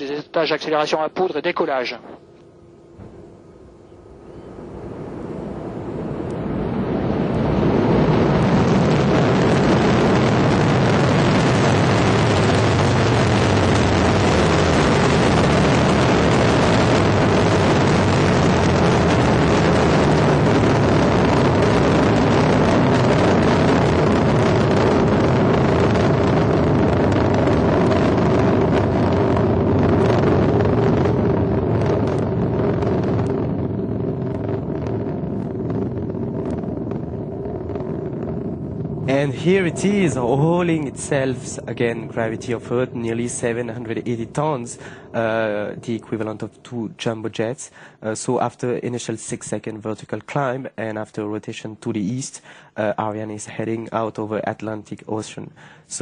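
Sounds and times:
rocket engine rumble: 0.0s - 50.8s
sharp crackles: 6.0s - 47.4s.

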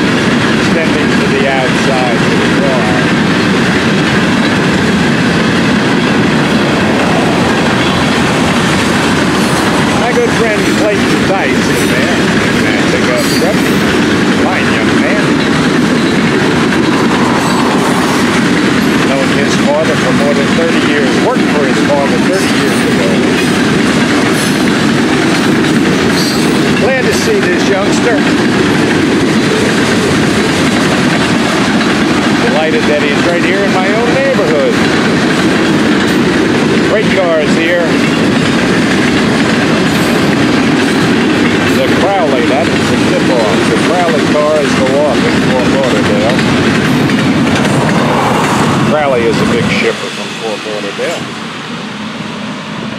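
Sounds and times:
train wheels rumbling on rails: 0.0s - 52.9s.

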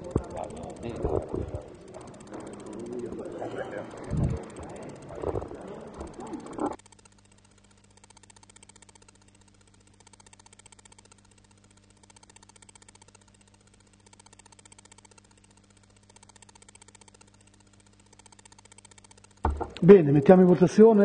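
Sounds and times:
faint buzz: 0.0s - 21.0s
faint electrical hum: 0.0s - 21.0s.

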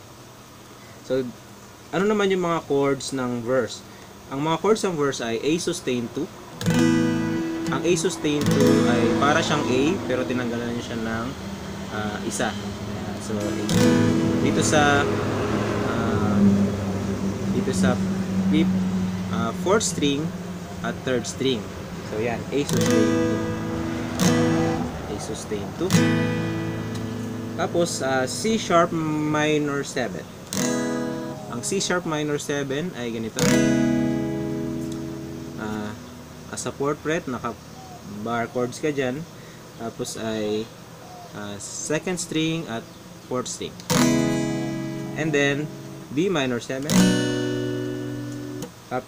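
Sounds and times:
acoustic guitar strumming: 4.7s - 40.9s, 43.8s - 48.9s.

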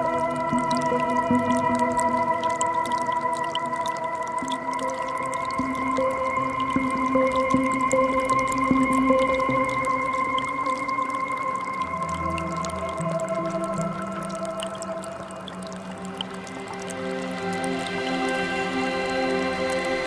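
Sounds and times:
slow ambient synthesizer music: 0.0s - 20.0s
trickling forest creek: 0.0s - 20.0s.

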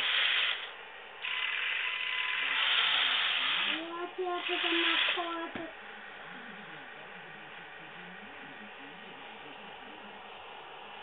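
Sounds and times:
small electric motor whirring: 0.0s - 5.5s.

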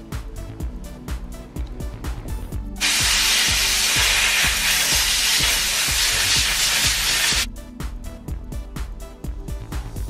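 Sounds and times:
background music with steady beat: 0.0s - 10.0s
steam cleaner jet hissing: 2.8s - 7.5s.

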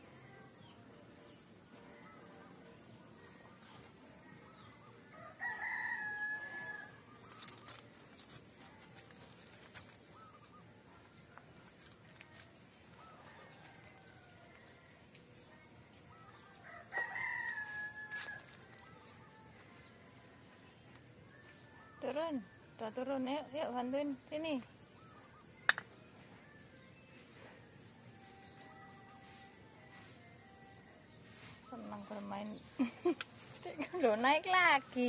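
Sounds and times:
rooster crowing: 5.1s - 7.0s, 16.6s - 18.6s.

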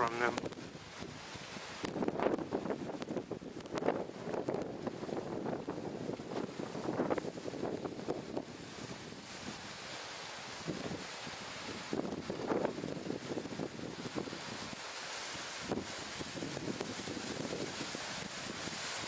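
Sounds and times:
gusty wind on microphone: 0.0s - 19.0s.

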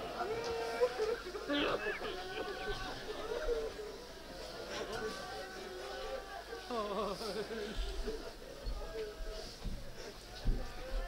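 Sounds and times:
mourners wailing: 0.0s - 11.0s.

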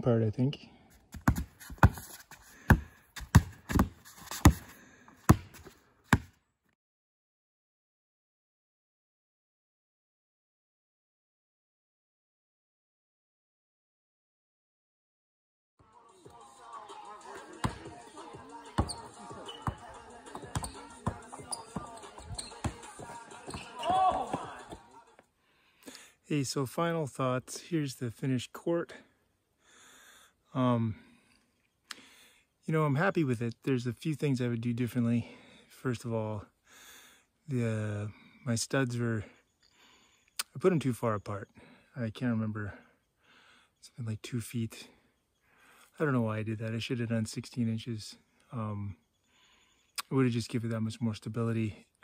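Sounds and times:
basketball bouncing on wooden boards: 1.1s - 2.0s, 2.6s - 4.6s, 5.3s - 6.3s, 17.6s - 17.9s, 18.8s - 24.8s
children talking and calling out: 15.9s - 25.2s.

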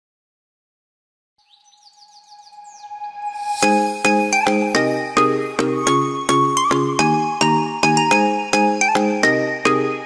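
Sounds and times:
high falling whistles: 1.8s - 5.4s.

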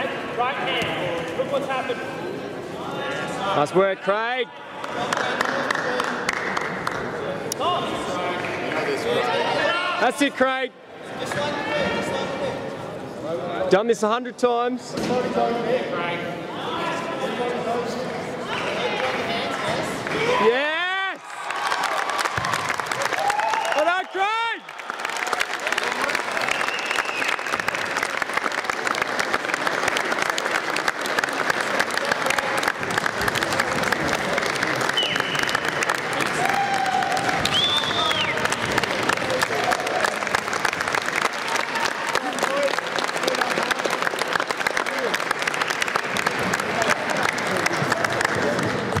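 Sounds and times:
spectators applauding: 4.8s - 9.2s, 20.0s - 49.0s
calls from crowd: 18.7s - 49.0s.

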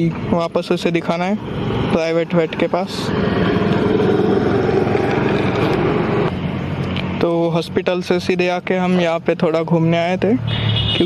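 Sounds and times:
motor vehicle engine running: 0.0s - 8.2s.

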